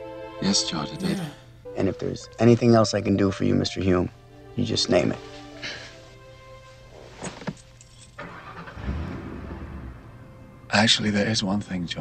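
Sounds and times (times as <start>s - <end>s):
car engine and road rumble: 8.2s - 10.5s.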